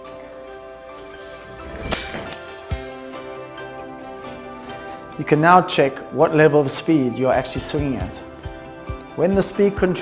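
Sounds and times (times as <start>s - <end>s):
background music: 0.0s - 10.0s
swing trainer swishing: 0.9s - 3.3s.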